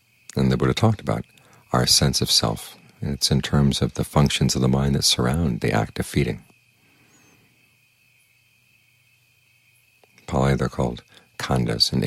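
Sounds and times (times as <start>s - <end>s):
high-pitched whine: 0.0s - 12.0s
low hum: 0.0s - 12.0s.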